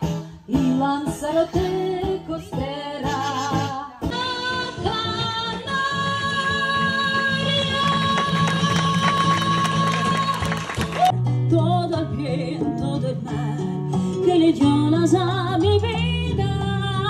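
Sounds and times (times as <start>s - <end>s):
woman singing with vibrato: 0.0s - 17.0s.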